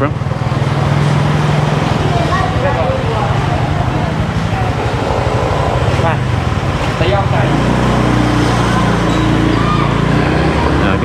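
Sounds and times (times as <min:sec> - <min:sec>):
engines in slow street traffic: 0:00.0 - 0:11.0.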